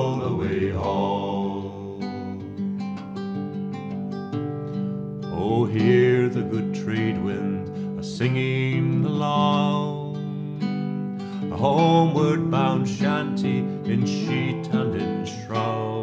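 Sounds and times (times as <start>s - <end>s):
man singing: 0.0s - 2.8s, 5.3s - 10.8s, 11.4s - 16.0s
fingerpicked classical guitar: 0.0s - 16.0s.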